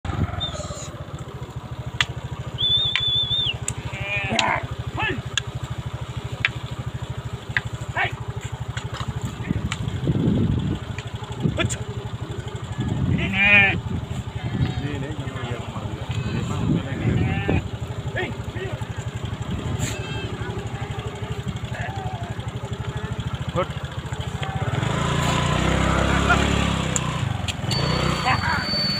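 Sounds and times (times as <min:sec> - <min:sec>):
motorcycle engine idling: 0:00.1 - 0:28.9
high whistle: 0:02.6 - 0:03.6, 0:27.7 - 0:28.9
sheep and goats bleating: 0:03.8 - 0:04.7, 0:13.1 - 0:17.6.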